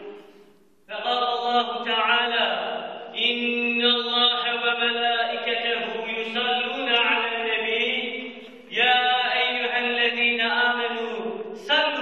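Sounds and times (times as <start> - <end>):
man chanting melodically: 0.9 - 12.0.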